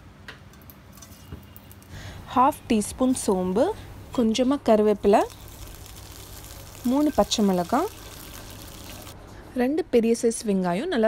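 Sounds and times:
low steady hum: 0:01.0 - 0:11.0
seeds sizzling in hot oil: 0:04.9 - 0:09.2.

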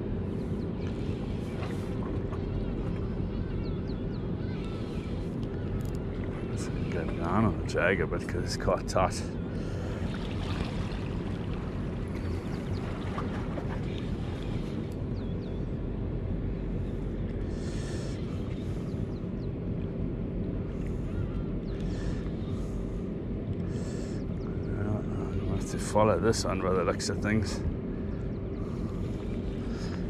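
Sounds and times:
constant low hum: 0:00.0 - 0:30.0
harbour water: 0:00.0 - 0:30.0
wind rumble: 0:00.0 - 0:30.0.

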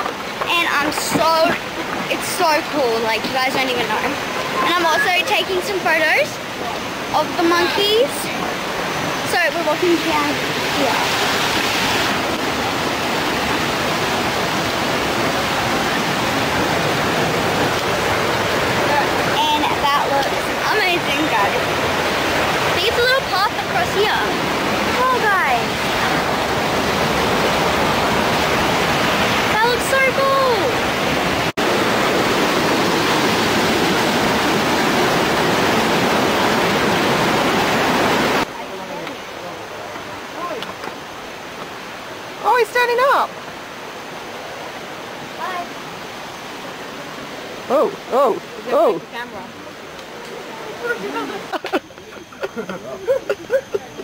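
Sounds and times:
river rushing over rocks: 0:00.0 - 0:52.4.

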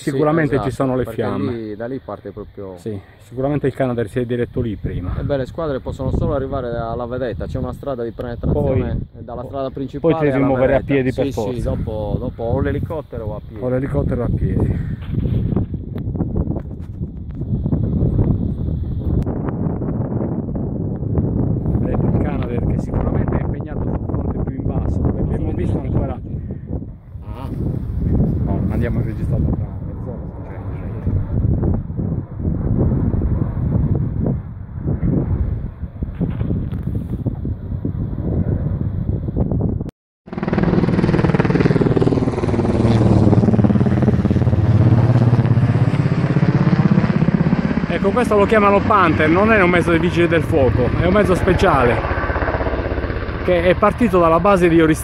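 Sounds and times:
wind buffeting microphone: 0:03.4 - 0:55.0
helicopter rotor beat: 0:27.8 - 0:36.4, 0:40.3 - 0:55.0.

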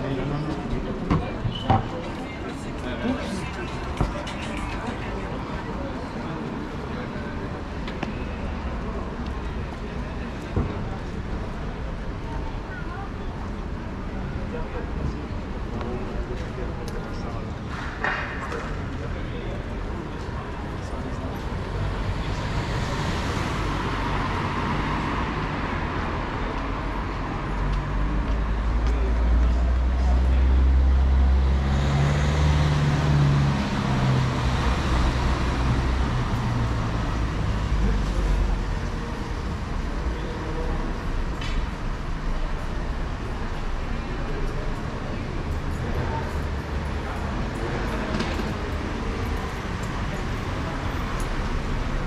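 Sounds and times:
road traffic passing: 0:00.0 - 0:52.0.

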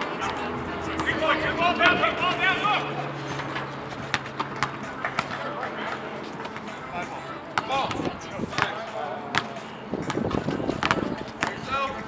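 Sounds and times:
players calling out: 0:00.0 - 0:12.0
basketball bouncing on hard court: 0:04.0 - 0:05.4, 0:07.6 - 0:11.7.

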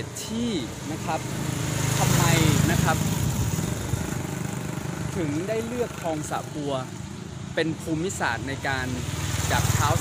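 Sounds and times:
engine running: 0:00.0 - 0:10.0.

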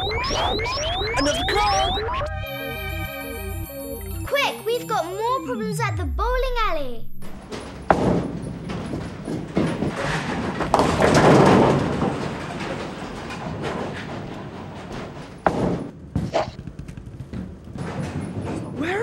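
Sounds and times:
bowling ball rolling on wooden lane: 0:07.3 - 0:19.0
bowling pins clattering: 0:07.3 - 0:19.0
bowling ball thud on lane: 0:07.7 - 0:12.3.

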